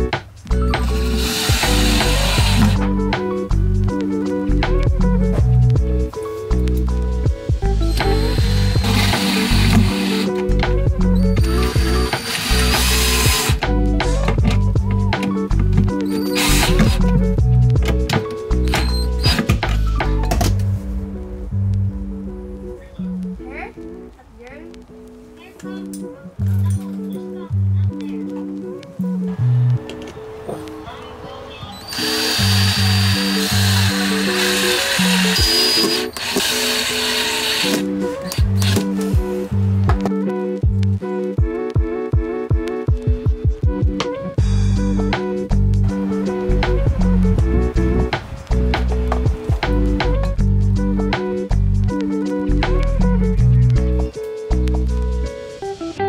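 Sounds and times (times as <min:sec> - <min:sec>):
background music with steady beat: 0:00.0 - 0:56.0
cordless drill driving screws: 0:00.8 - 0:02.8, 0:07.9 - 0:10.3, 0:11.4 - 0:13.6, 0:16.0 - 0:17.0, 0:31.8 - 0:39.1.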